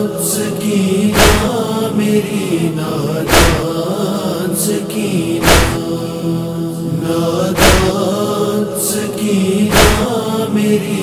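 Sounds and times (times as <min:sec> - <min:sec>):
men's chorus chanting drone: 0:00.0 - 0:11.0
person singing a lament: 0:00.0 - 0:11.0
heavy slow drum beat: 0:01.2 - 0:01.6, 0:03.3 - 0:03.7, 0:05.4 - 0:05.8, 0:07.6 - 0:08.0, 0:09.7 - 0:10.1.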